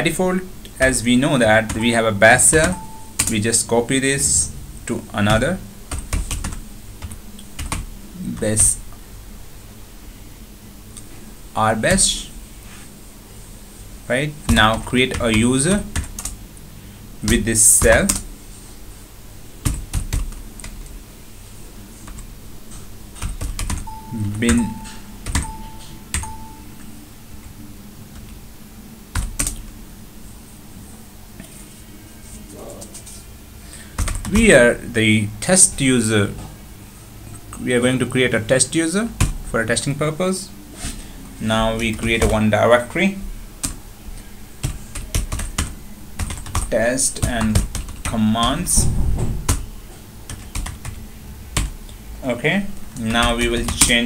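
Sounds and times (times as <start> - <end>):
keyboard typing clicks: 1.7 - 3.4, 23.2 - 26.9
computer keyboard keystrokes: 2.5 - 3.4, 5.9 - 7.9, 14.5 - 16.4, 17.3 - 18.3, 19.6 - 20.8, 23.2 - 26.6, 29.2 - 29.6, 34.0 - 34.4, 44.6 - 48.6, 50.3 - 51.0, 52.9 - 54.0.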